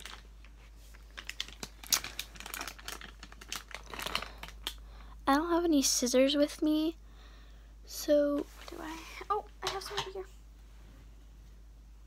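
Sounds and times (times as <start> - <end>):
plastic packet crinkling: 0.0 - 4.9.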